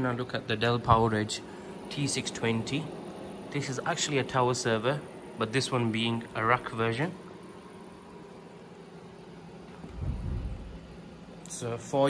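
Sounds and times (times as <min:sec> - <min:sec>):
server cooling fans running: 0:00.0 - 0:12.0
brief low rumble: 0:09.9 - 0:10.9.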